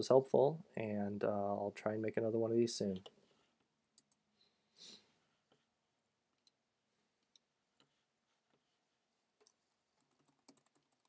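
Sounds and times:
computer keyboard typing: 9.4 - 11.0.

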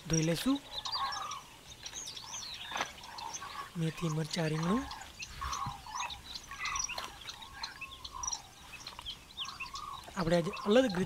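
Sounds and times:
birds chirping: 0.0 - 11.0.

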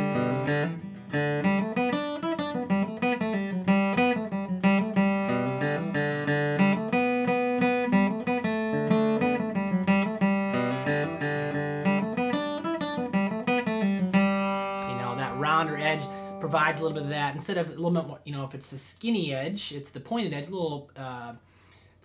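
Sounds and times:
acoustic guitar flatpicked melody: 0.0 - 20.8.

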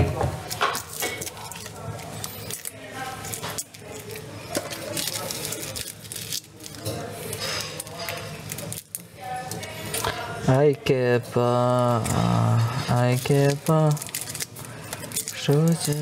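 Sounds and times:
low voices talking: 1.4 - 16.0.

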